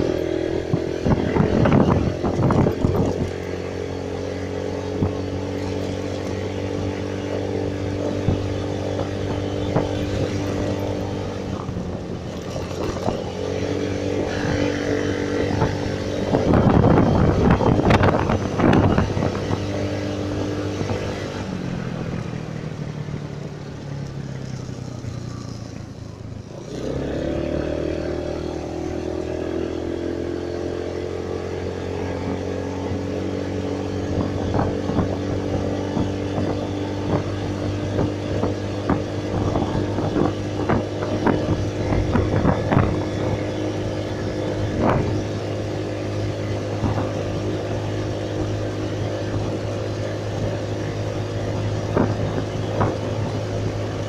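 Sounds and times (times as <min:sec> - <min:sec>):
small motorcycle engine riding: 0:00.0 - 0:54.0.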